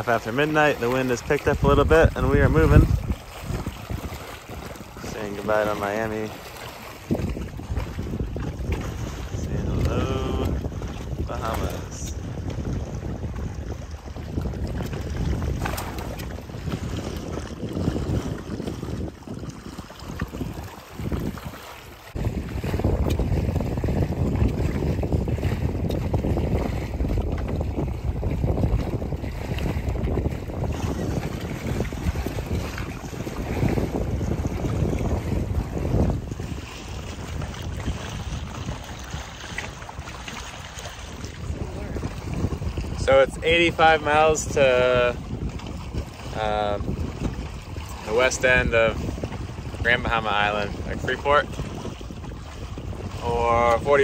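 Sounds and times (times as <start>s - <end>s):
water slapping against hulls: 0.0s - 54.0s
wind buffeting microphone: 0.0s - 54.0s.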